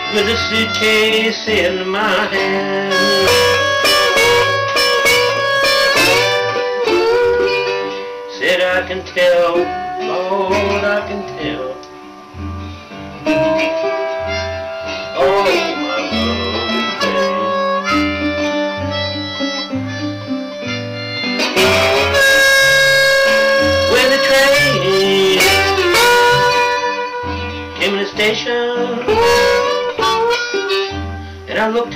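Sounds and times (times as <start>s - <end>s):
blues harmonica solo: 0.0s - 31.9s
low bass notes: 0.0s - 31.9s
slide guitar: 0.0s - 31.9s.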